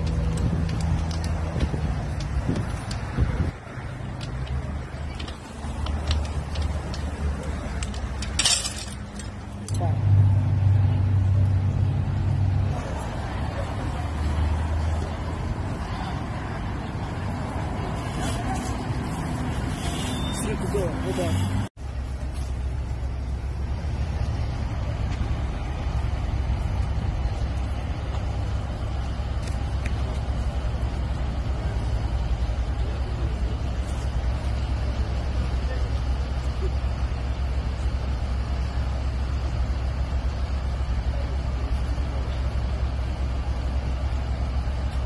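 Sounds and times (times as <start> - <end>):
fire engine idling: 0.0 - 45.0.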